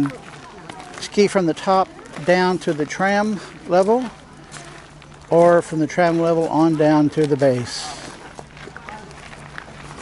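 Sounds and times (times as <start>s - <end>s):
distant voices: 0.0s - 10.0s
low steady hum: 0.0s - 10.0s.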